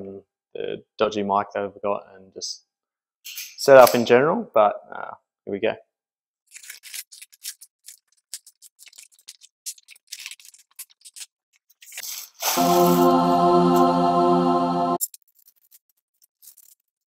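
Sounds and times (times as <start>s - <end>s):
steady music chord: 12.4s - 15.0s.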